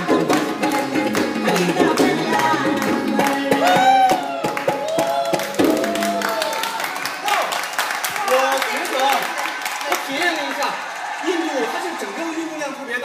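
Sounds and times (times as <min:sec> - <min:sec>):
person singing long notes: 0:00.0 - 0:06.3
tabla drumming: 0:00.0 - 0:06.3
steady hand clapping: 0:00.2 - 0:11.1.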